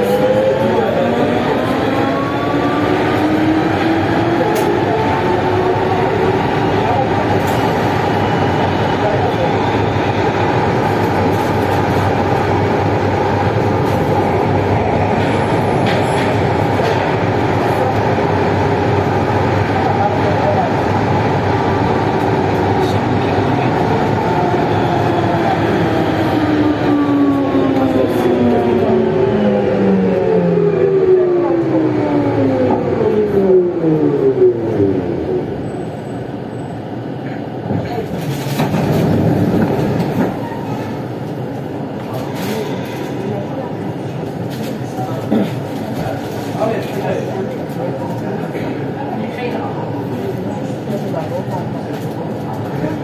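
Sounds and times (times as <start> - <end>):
metro train rolling noise: 0.0 - 53.0.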